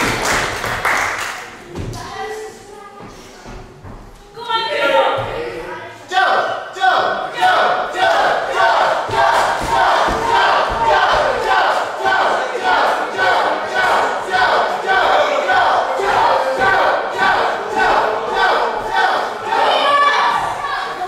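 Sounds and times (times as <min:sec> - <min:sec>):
crowd chanting: 0:06.1 - 0:21.0
low thuds: 0:09.0 - 0:11.6.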